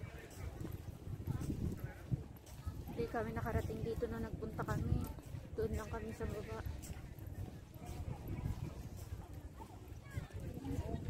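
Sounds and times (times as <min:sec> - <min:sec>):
faint voices: 0:00.0 - 0:11.0
wind rumble on microphone: 0:00.0 - 0:11.0.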